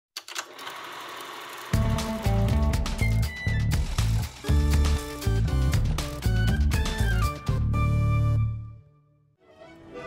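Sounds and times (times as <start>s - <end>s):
film projector clattering: 0.3s - 2.3s
music with heavy bass: 1.8s - 8.2s.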